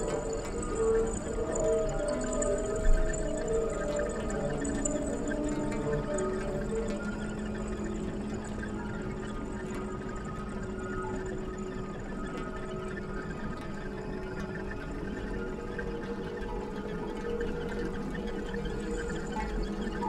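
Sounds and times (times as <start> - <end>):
droning hum of held tones: 0.0 - 20.0.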